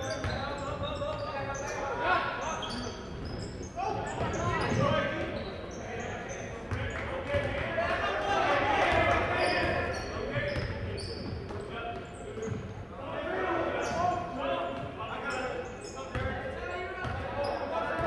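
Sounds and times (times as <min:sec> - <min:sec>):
sneakers squeaking: 0:00.0 - 0:07.7, 0:08.8 - 0:18.0
crowd voices: 0:00.0 - 0:18.0.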